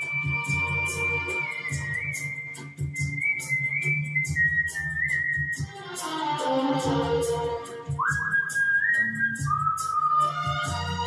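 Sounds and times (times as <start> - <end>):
man whistling a melody: 0.0 - 6.0, 7.8 - 10.7
karaoke backing track: 0.0 - 11.0.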